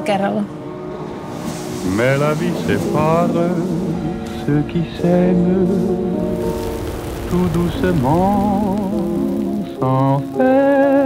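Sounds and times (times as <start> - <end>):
steady low tones: 0.0 - 11.0.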